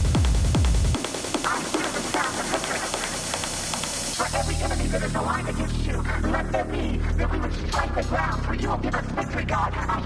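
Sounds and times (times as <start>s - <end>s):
synth stabs: 0.0s - 7.8s.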